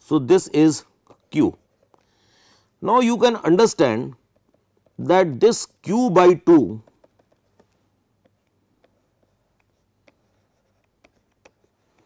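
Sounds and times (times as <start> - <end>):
stylus ticking on pen tablet: 6.7 - 12.0.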